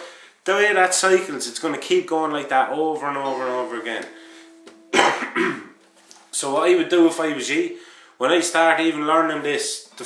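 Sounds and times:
man coughing: 4.9s - 5.8s.

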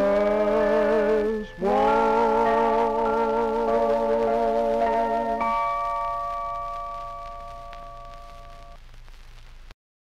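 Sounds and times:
bell-like chord on old record: 0.0s - 8.8s
faint low hum: 0.0s - 9.7s
record surface hiss: 0.0s - 9.8s.

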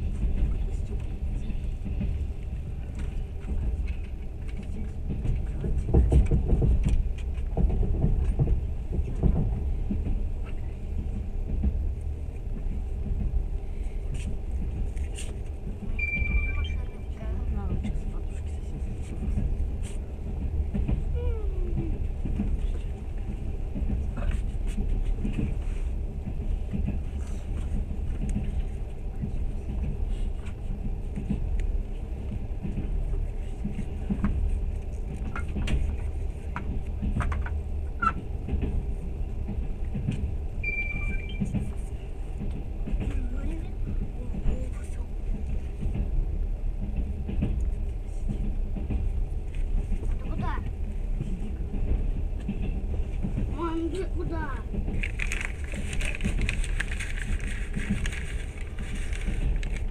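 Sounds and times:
train carriage low rumble: 0.0s - 59.9s.

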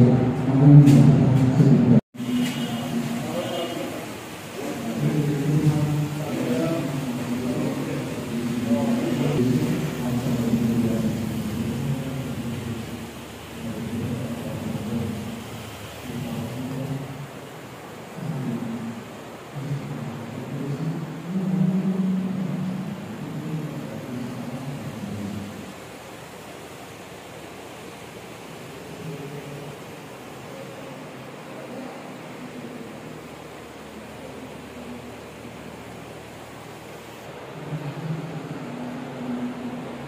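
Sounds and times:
muffled low chanting: 0.0s - 25.9s, 28.7s - 40.0s
steady hiss: 0.0s - 40.0s.

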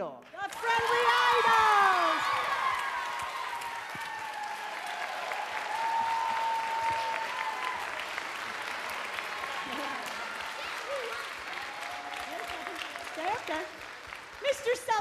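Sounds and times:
audience applauding: 0.4s - 15.0s.

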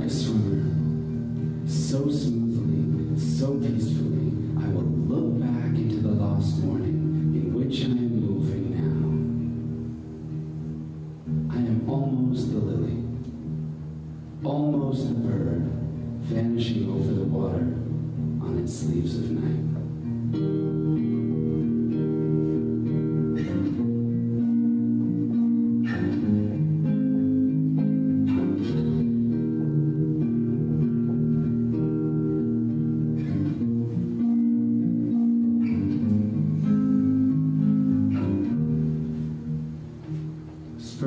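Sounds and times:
acoustic guitar chords: 0.0s - 41.0s.

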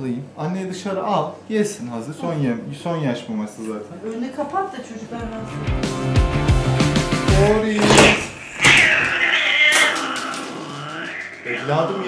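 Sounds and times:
background music: 5.2s - 8.1s
high-pitched cat meow: 8.0s - 12.0s.

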